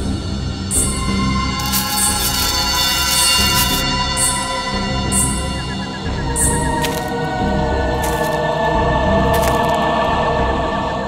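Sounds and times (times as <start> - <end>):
eerie choir-like score: 0.0 - 11.0.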